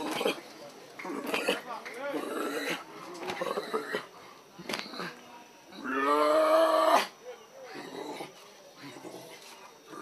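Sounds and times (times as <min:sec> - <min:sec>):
faint murmuring voices: 0:00.0 - 0:10.0.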